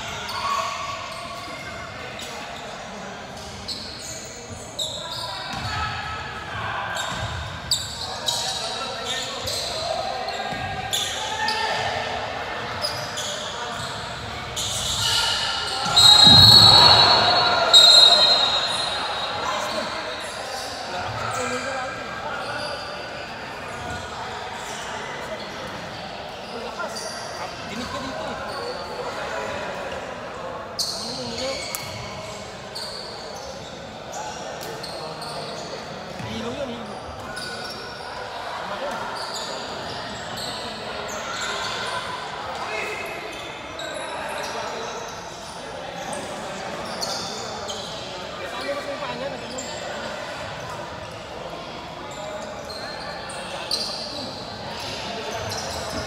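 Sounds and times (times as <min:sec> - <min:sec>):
murmur of voices echoing: 0:00.0 - 0:56.0.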